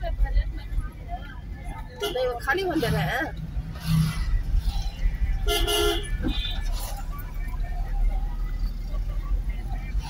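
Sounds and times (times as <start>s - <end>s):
car engine rumble: 0.0s - 10.0s
road noise: 0.0s - 10.0s.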